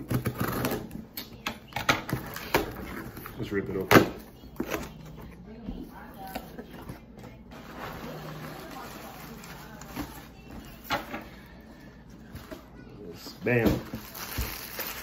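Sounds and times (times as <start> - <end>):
plastic wrapping crinkling: 7.5 - 10.6, 13.5 - 15.0.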